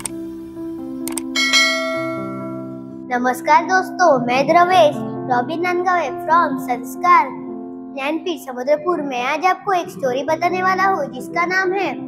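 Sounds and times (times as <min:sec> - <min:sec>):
intro music steady chord: 0:00.0 - 0:03.1
click: 0:01.0 - 0:01.3
bright bell-like chime: 0:01.4 - 0:02.8.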